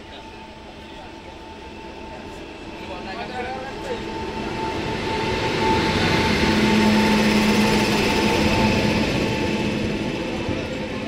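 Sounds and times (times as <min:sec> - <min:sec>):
locomotive whine: 0:00.0 - 0:11.0
train wheels rushing on rail: 0:00.0 - 0:11.0.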